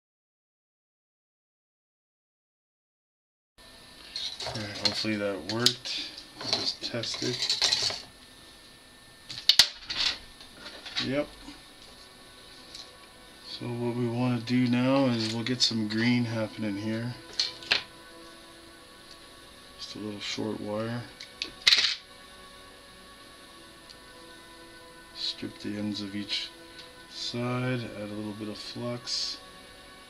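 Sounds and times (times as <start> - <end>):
faint steady hum: 3.6 - 30.0
scraping rattle of metal parts: 4.0 - 5.1, 6.4 - 8.1.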